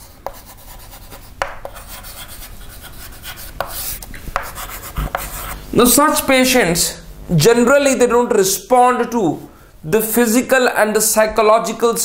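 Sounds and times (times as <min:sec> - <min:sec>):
chalk scratching on chalkboard: 0:00.0 - 0:05.6
chalk tapping board: 0:00.0 - 0:05.6.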